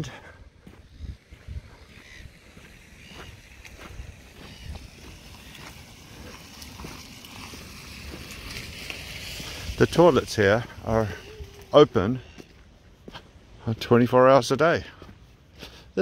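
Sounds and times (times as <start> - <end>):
wind rumbling on microphone: 0.0 - 12.5
footsteps on grass and gravel: 0.0 - 16.0.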